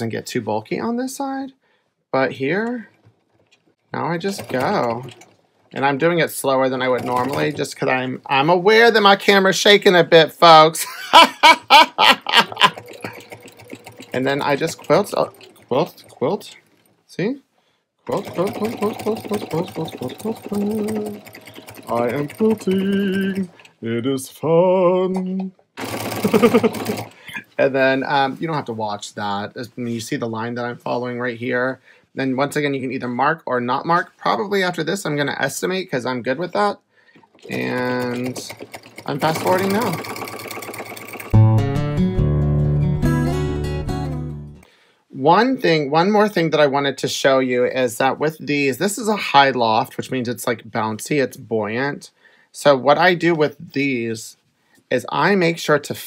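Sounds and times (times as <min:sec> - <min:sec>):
sewing machine stitching: 0:02.6 - 0:08.0, 0:11.2 - 0:16.5, 0:18.1 - 0:23.8, 0:25.7 - 0:27.4, 0:37.2 - 0:41.4
person laughing: 0:10.8 - 0:13.3, 0:26.1 - 0:27.5
acoustic guitar music: 0:18.1 - 0:23.7, 0:41.2 - 0:44.7.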